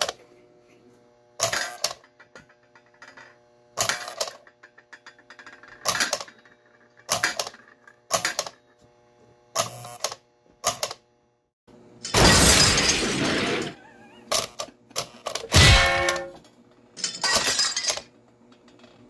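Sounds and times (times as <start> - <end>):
metal clang with ringing: 15.5 - 16.4.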